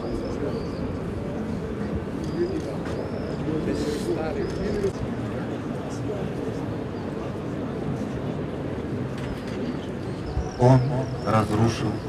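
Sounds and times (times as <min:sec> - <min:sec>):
outdoor background noise: 0:00.0 - 0:12.0
distant man reciting prayers: 0:10.2 - 0:12.0.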